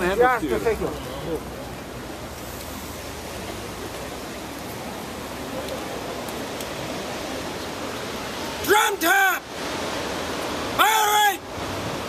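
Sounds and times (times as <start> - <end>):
crowd noise: 0.0 - 10.1
wind hiss: 1.4 - 12.0
man shouting commands: 8.6 - 9.5, 10.8 - 11.4.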